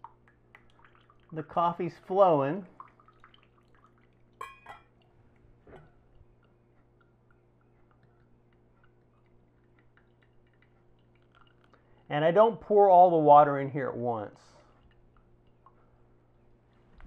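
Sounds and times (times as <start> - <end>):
coffee dripping through filter: 0.0 - 12.4, 14.6 - 15.9
metal filter clinking on mug: 4.4 - 4.9.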